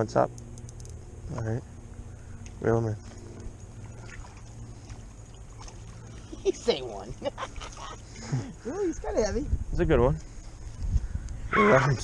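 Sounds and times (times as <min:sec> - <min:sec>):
steady low rumble: 0:00.0 - 0:12.0
water splashing and rippling: 0:03.0 - 0:09.4.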